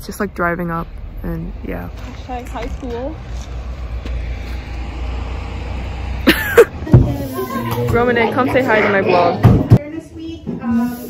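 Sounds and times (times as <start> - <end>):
bus engine rumble: 0.0 - 11.0.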